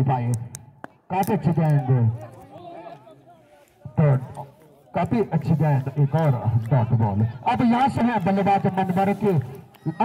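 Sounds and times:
man talking loudly: 0:00.0 - 0:00.5, 0:01.1 - 0:10.0.

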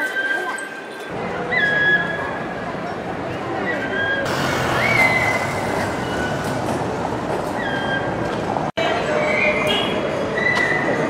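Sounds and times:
crowd noise: 0:00.0 - 0:11.0
steady traffic: 0:01.1 - 0:11.0.

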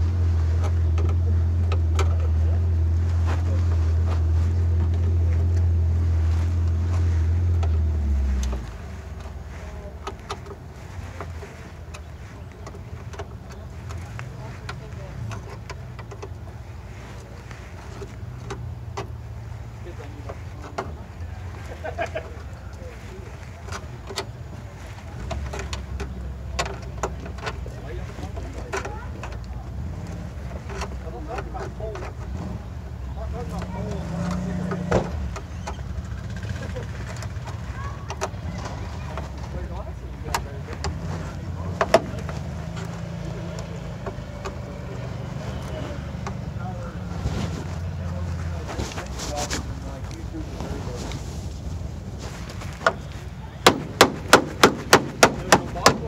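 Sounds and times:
sharp clicks and knocks: 0:00.0 - 0:21.6, 0:22.7 - 0:46.8, 0:52.3 - 0:56.0
off-road vehicle engine rumble: 0:00.0 - 0:56.0
rapid loud sharp knocks: 0:53.6 - 0:56.0.

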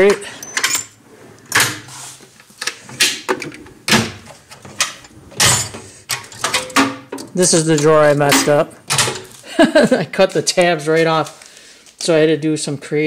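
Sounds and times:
tools rattling: 0:00.0 - 0:01.9, 0:02.8 - 0:09.4
metal drawers sliding and clunking: 0:00.0 - 0:09.3.

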